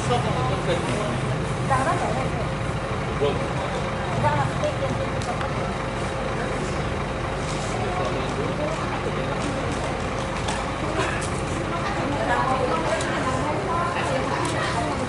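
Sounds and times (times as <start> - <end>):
diesel bus engine idling: 0.0 - 15.0
indistinct voices talking: 0.0 - 15.0.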